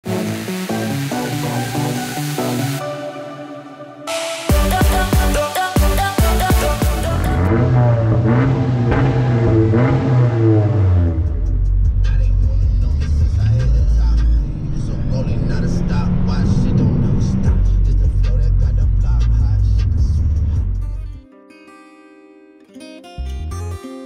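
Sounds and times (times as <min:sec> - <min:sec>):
electronic music: 0:00.0 - 0:19.0
car engine revving: 0:06.4 - 0:21.0
low engine rumble: 0:07.1 - 0:21.2.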